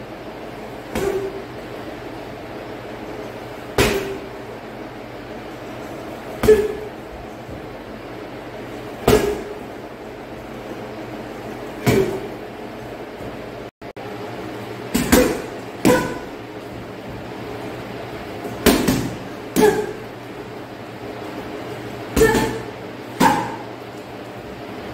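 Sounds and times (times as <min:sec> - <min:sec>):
punches thudding on punching bag: 0:00.9 - 0:01.4, 0:03.7 - 0:04.3, 0:06.4 - 0:06.9, 0:09.0 - 0:09.6, 0:11.8 - 0:12.4, 0:14.9 - 0:16.4, 0:18.5 - 0:20.0, 0:22.1 - 0:23.6.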